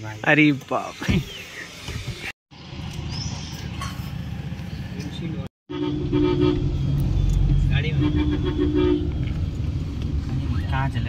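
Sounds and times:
low rumble of engine and road: 0:02.2 - 0:11.0
vehicle horn beeps: 0:05.7 - 0:07.0, 0:07.6 - 0:09.2.

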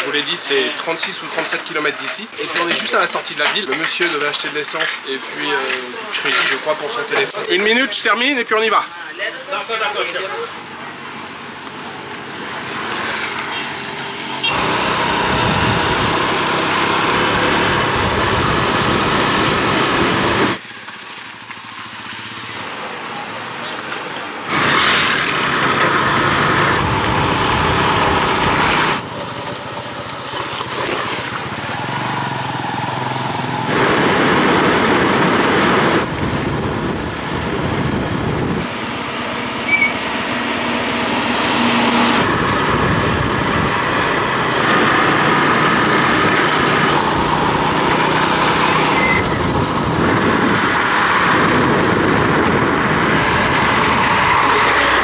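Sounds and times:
road noise on dirt road: 0:00.0 - 0:55.0
motorcycle engine: 0:10.5 - 0:55.0.

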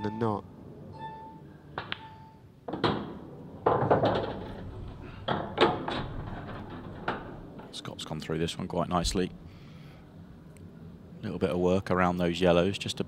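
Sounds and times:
ball rolling under table: 0:02.7 - 0:07.8
pool balls clicking: 0:02.7 - 0:07.8.

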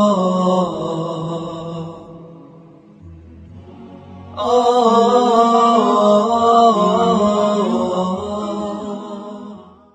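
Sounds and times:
steady low drone: 0:00.0 - 0:09.0
wordless vocal chant: 0:00.0 - 0:09.9.

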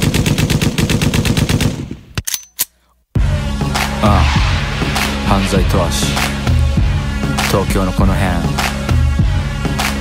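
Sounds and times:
rapid machine-gun fire: 0:00.0 - 0:01.9.

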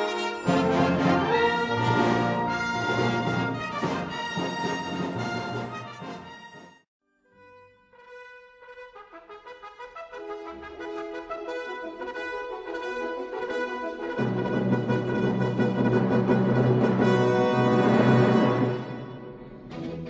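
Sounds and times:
brass ensemble playing: 0:00.0 - 0:06.8, 0:07.9 - 0:19.7.

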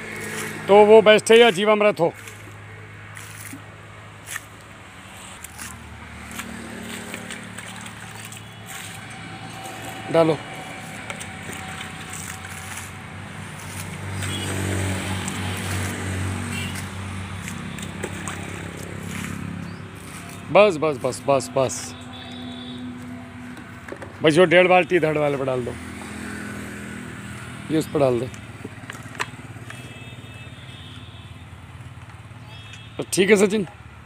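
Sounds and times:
vehicle engine running: 0:05.0 - 0:23.8.

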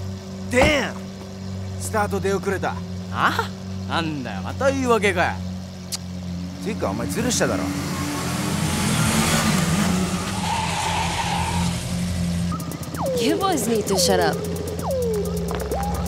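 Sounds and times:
tyres squealing: 0:08.7 - 0:14.4
low steady drone: 0:11.8 - 0:16.0
voice fragments: 0:13.0 - 0:14.6.

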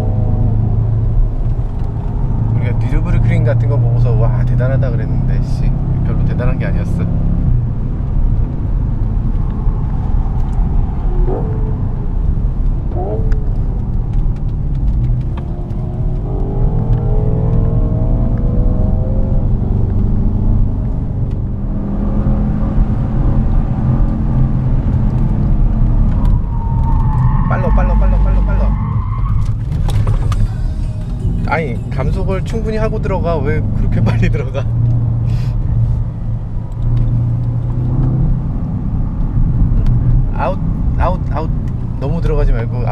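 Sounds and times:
car engine accelerating: 0:00.0 - 0:42.9
road and tyre noise: 0:00.0 - 0:42.9.

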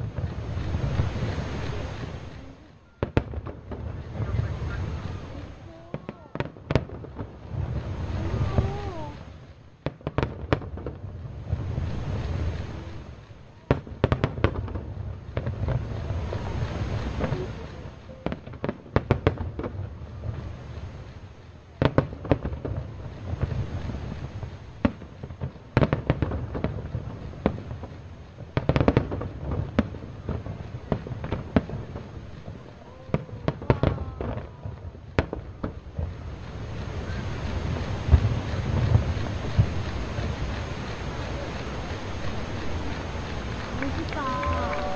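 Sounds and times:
firework shells bursting: 0:00.0 - 0:44.9.

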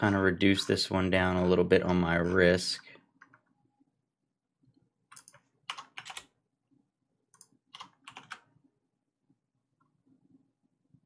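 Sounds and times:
computer keyboard typing: 0:05.1 - 0:06.4, 0:07.3 - 0:08.5.

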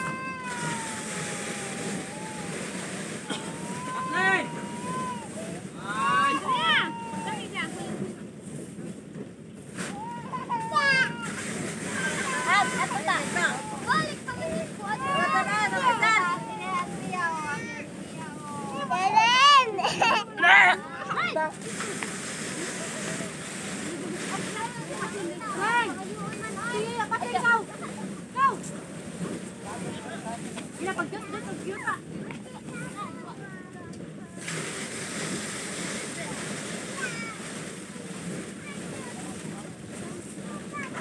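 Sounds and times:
small child's voice: 0:00.0 - 0:02.6, 0:09.9 - 0:21.6, 0:24.3 - 0:28.7, 0:31.7 - 0:34.5, 0:36.8 - 0:37.5, 0:38.6 - 0:41.0
threshing machine running: 0:00.0 - 0:08.8, 0:09.5 - 0:18.6
steady background hiss: 0:00.0 - 0:41.0.

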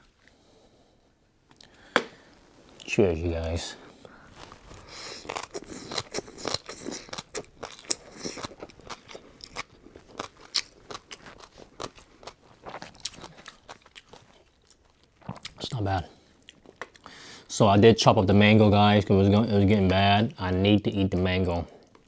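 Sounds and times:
chewing crunchy food: 0:04.3 - 0:17.1.

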